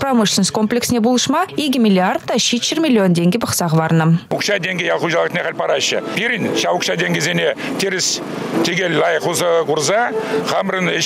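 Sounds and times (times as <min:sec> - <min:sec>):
man speaking: 0:04.3 - 0:11.0.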